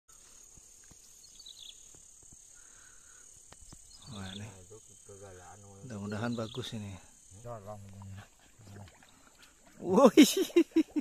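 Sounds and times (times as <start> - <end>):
man laughing loudly: 10.0 - 11.0.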